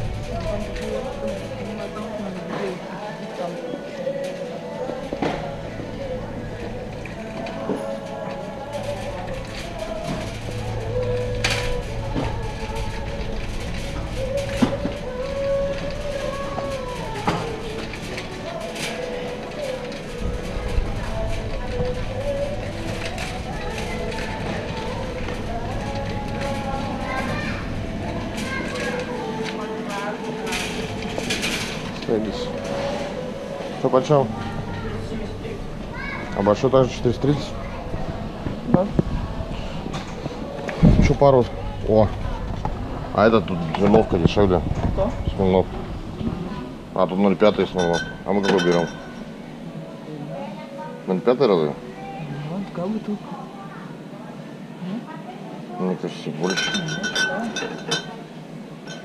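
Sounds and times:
shopping cart rolling and rattling: 0:00.0 - 0:49.6, 0:56.2 - 0:59.0
voice in large hall: 0:00.0 - 0:58.7
store background music: 0:00.0 - 0:59.0.

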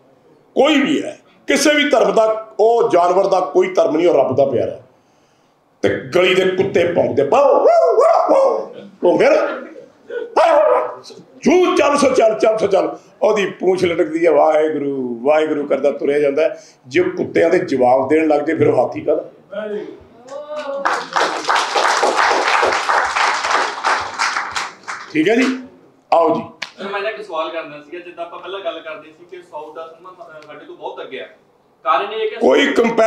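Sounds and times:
man imitating dog barks: 0:07.3 - 0:08.8, 0:10.1 - 0:11.2
people clapping: 0:20.3 - 0:25.7, 0:26.6 - 0:26.8.

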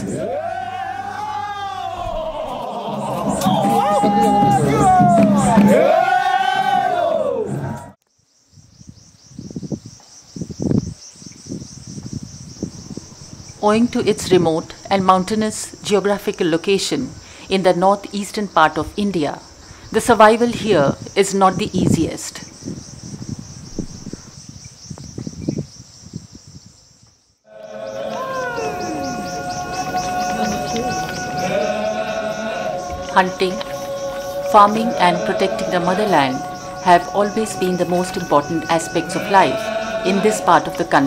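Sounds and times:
music with chanting voices: 0:00.0 - 0:08.0, 0:27.5 - 0:41.0
insects chirring: 0:08.0 - 0:41.0
wind buffeting microphone: 0:08.5 - 0:17.4, 0:18.8 - 0:27.0.

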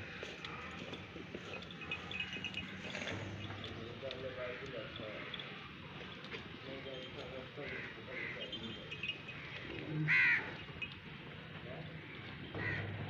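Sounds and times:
goat pen background noise: 0:00.0 - 0:13.0.

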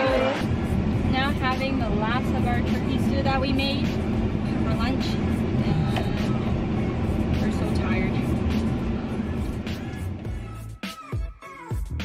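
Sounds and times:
low rumble in car cabin: 0:00.0 - 0:10.7
woman talking: 0:01.1 - 0:06.4, 0:07.3 - 0:08.3.

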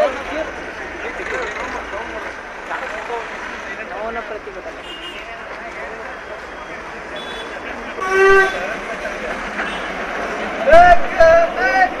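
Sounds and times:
crowd talking: 0:00.0 - 0:12.0
street noise: 0:00.0 - 0:12.0.

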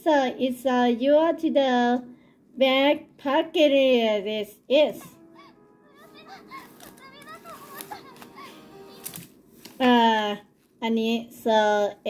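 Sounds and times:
faint children chattering: 0:05.0 - 0:09.2.

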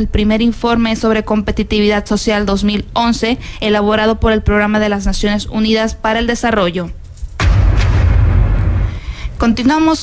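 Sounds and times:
deep boom: 0:07.4 - 0:09.4
low rumble: 0:07.4 - 0:09.4.

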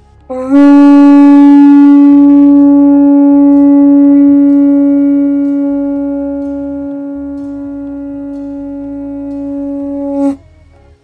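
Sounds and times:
conch shell trumpet note: 0:00.3 - 0:10.6.

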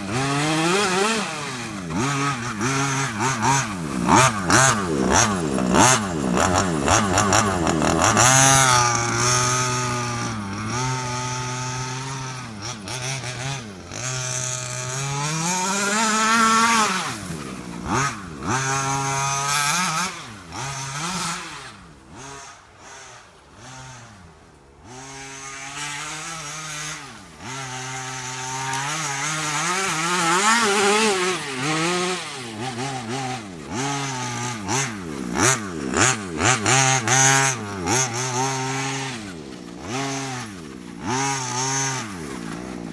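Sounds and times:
small two-stroke engine revving: 0:00.0 - 0:42.9.

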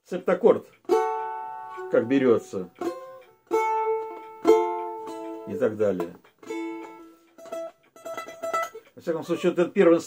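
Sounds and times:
domra chord strummed: 0:00.4 - 0:09.6.

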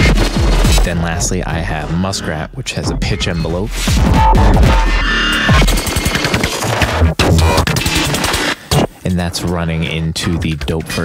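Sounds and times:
blippy hi-hat clicks: 0:00.0 - 0:11.0
glitchy electronic drum pattern: 0:00.0 - 0:11.0.

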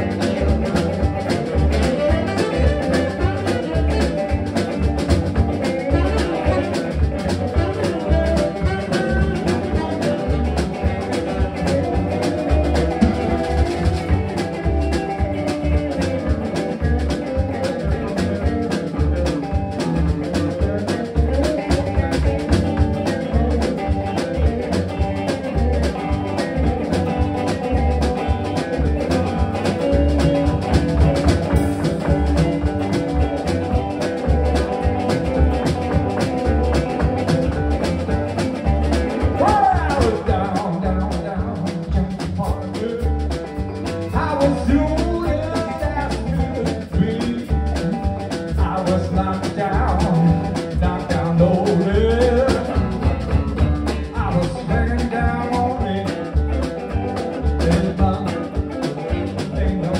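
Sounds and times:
bent guitar note: 0:00.0 - 0:41.7
live blues band playing: 0:00.0 - 0:59.9.

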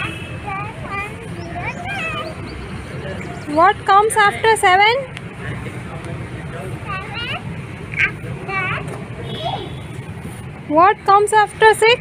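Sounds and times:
young child making soft sounds: 0:00.0 - 0:02.4, 0:06.8 - 0:09.8.

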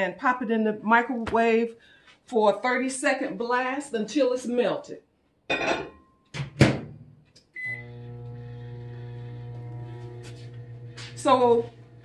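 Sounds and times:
microwave oven humming: 0:07.6 - 0:12.0.

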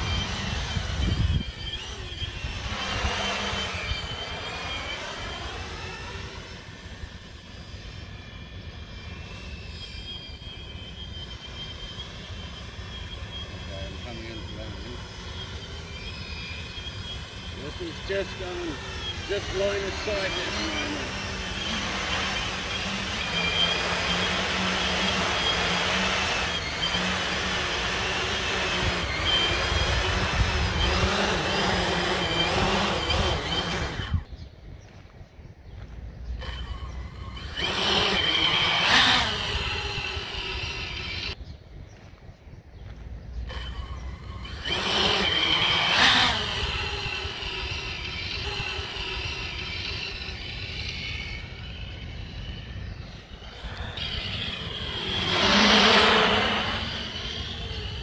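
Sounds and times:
racing drone motors whining: 0:00.0 - 0:58.0.

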